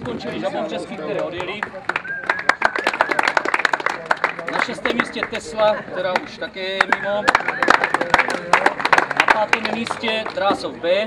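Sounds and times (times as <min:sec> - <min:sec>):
people clapping: 0:00.0 - 0:10.7
thin wavering whistle: 0:02.0 - 0:03.2.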